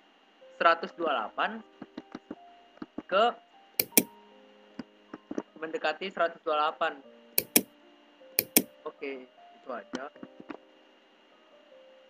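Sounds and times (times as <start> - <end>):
computer mouse double clicks: 3.8 - 4.1, 7.4 - 7.7, 8.4 - 8.7.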